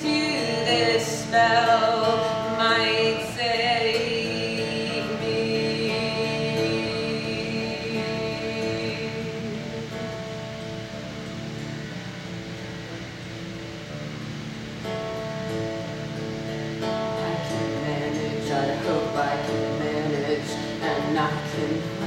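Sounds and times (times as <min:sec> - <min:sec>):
acoustic guitar playing: 0:00.0 - 0:22.0.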